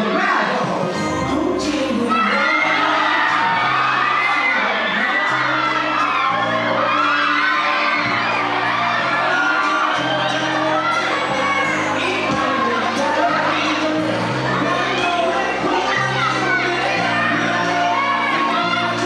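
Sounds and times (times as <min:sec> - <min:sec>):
audience shouting and cheering: 0:00.0 - 0:19.0
loud pop music: 0:00.0 - 0:19.0.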